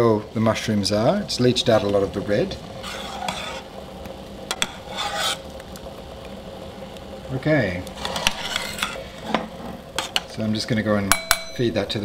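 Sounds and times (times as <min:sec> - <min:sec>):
spoon scraping through water: 0:02.8 - 0:03.7, 0:04.5 - 0:05.4, 0:08.0 - 0:10.2
spoon clinking against pot: 0:11.1 - 0:11.6.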